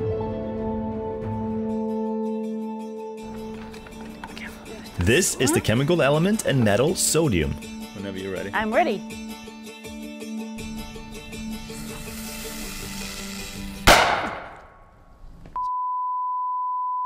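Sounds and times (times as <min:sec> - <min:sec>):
background music: 0:00.0 - 0:14.5
hiss: 0:11.4 - 0:14.5
metal exploding in water: 0:13.8 - 0:14.7.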